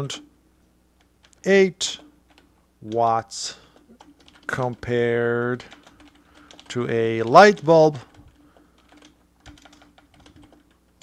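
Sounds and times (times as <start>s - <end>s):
computer keyboard typing: 1.0s - 11.0s.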